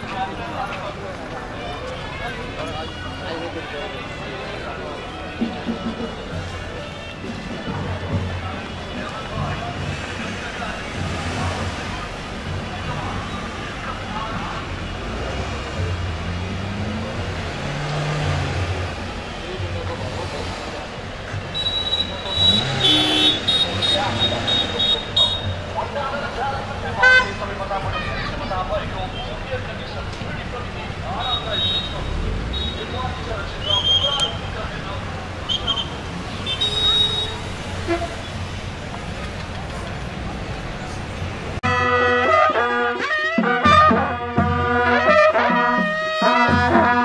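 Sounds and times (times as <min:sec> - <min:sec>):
car engines passing: 0:00.0 - 0:42.8
traffic rumble: 0:00.0 - 0:47.0
car horns honking: 0:21.3 - 0:26.0, 0:26.7 - 0:38.6, 0:41.5 - 0:47.0.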